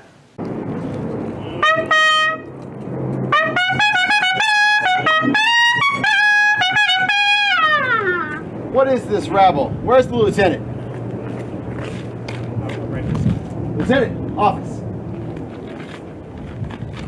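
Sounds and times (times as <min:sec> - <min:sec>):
trumpet fanfare: 0:01.6 - 0:02.5, 0:03.3 - 0:08.4.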